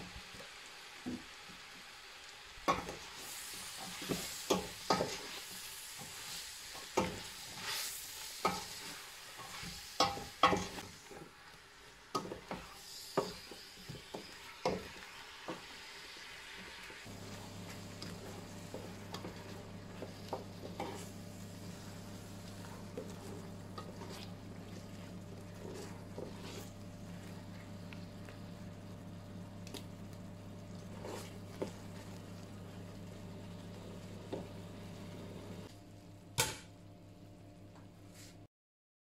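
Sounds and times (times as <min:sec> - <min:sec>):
apples bubbling in butter: 0:17.0 - 0:34.7
wooden spoon scraping a pot: 0:17.1 - 0:27.8, 0:30.8 - 0:32.2
steady low hum: 0:17.1 - 0:38.2.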